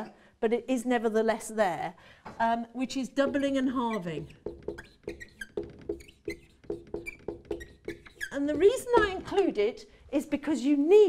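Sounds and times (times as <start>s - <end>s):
whiteboard marker squeaking: 3.2s - 9.5s.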